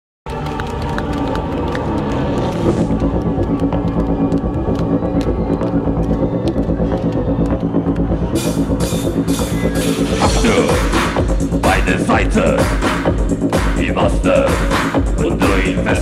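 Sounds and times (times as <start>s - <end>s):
low throbbing synth tones: 1.0s - 16.0s
drums: 8.3s - 16.0s.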